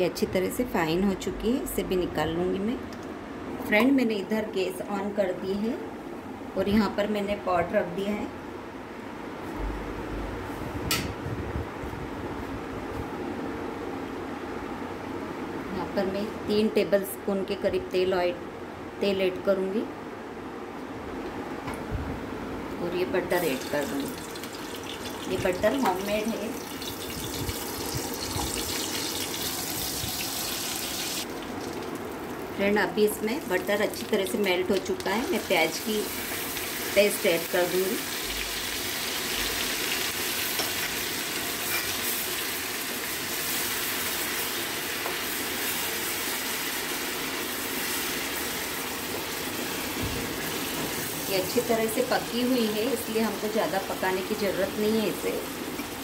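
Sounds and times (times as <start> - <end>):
steady background hiss: 0.0 - 56.0
onion paste sizzling in pan: 23.3 - 32.4, 33.1 - 56.0.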